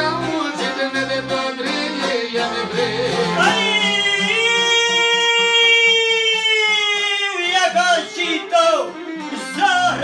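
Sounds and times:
man singing long high note: 0:00.0 - 0:07.5
accordion: 0:00.0 - 0:10.0
strummed lutes: 0:00.0 - 0:10.0.

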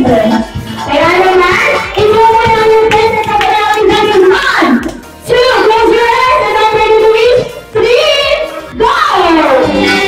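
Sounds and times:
background music: 0:00.0 - 0:10.0
hand claps: 0:02.8 - 0:05.1.

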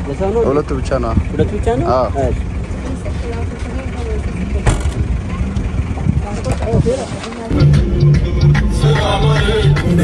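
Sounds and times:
low rumble of vehicles: 0:00.0 - 0:10.0
car boot lid thump: 0:04.6 - 0:05.0.

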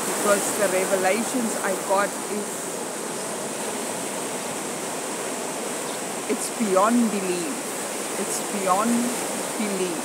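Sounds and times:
sea surf on rocky shore: 0:00.0 - 0:10.0.

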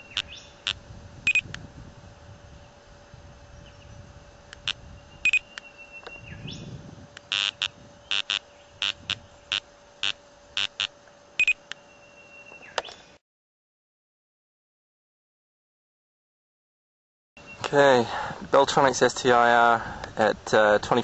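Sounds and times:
electronic speed gun beeping: 0:00.0 - 0:01.5, 0:04.6 - 0:05.5, 0:07.3 - 0:11.6
faint steady hum: 0:00.0 - 0:13.2, 0:17.4 - 0:21.0.

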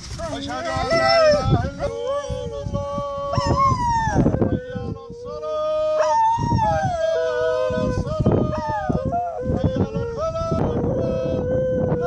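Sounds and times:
dog howling: 0:00.2 - 0:05.0, 0:05.8 - 0:12.0.

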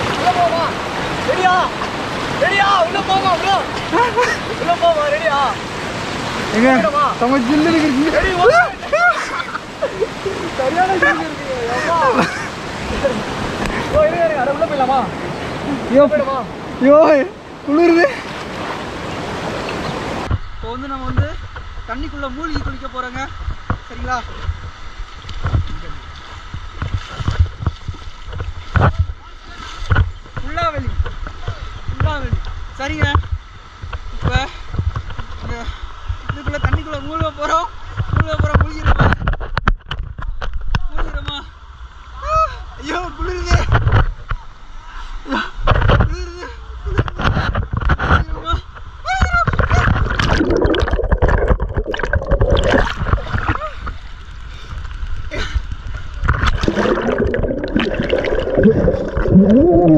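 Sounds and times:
stream rushing over rocks: 0:00.0 - 0:31.5, 0:49.6 - 0:55.2, 0:55.9 - 0:59.9
wind on microphone: 0:22.5 - 0:37.1, 0:49.2 - 0:59.9
river water gurgling underwater: 0:49.8 - 0:54.4, 0:55.9 - 0:59.9.

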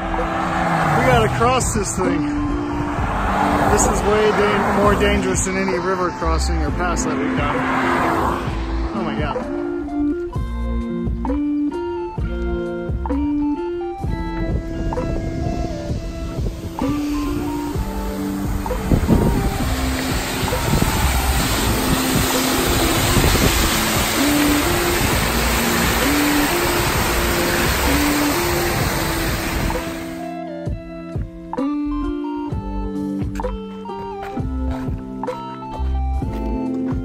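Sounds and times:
water rushing: 0:00.0 - 0:10.4, 0:14.0 - 0:30.3.

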